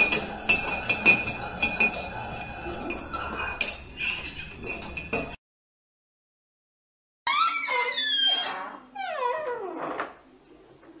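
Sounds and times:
animal crying out: 7.3s - 8.6s.

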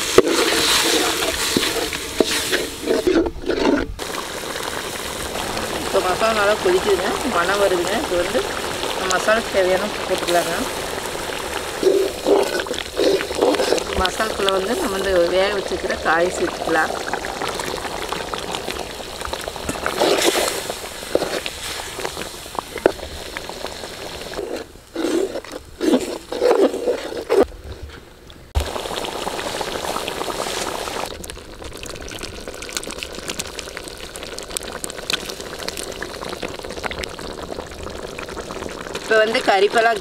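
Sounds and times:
gravy bubbling: 0.0s - 40.0s
ladle stirring thick gravy: 0.1s - 27.4s
food splashing into pot: 28.6s - 39.4s.

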